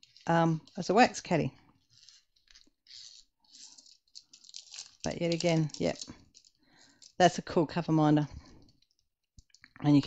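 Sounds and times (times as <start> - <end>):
plastic tray rustling on plastic sheet: 0.0 - 7.5.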